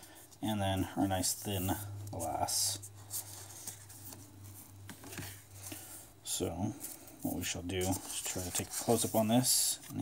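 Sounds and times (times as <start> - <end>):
steady low hum: 0.0 - 9.3.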